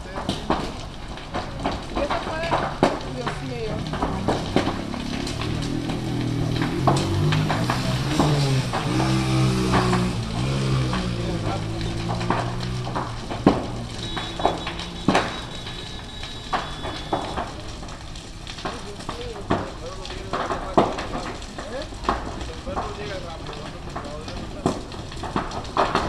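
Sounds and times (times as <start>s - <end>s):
people's voices: 0.0s - 17.9s, 18.6s - 24.9s
fire crackling and popping: 0.0s - 26.0s.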